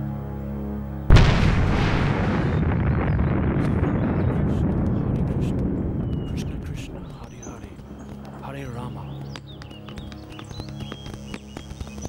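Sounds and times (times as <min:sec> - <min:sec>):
loud boom with deep rumbling: 0:01.1 - 0:07.6.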